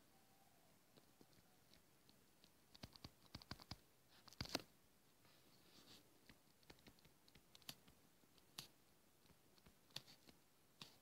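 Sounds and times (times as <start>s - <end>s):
sharp clicks: 1.0s - 4.7s, 6.2s - 11.0s
stylus tapping and scratching: 1.0s - 4.7s, 6.2s - 11.0s.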